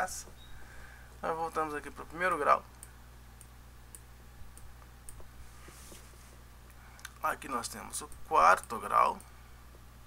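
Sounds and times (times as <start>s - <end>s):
soft hiss: 0.0s - 10.0s.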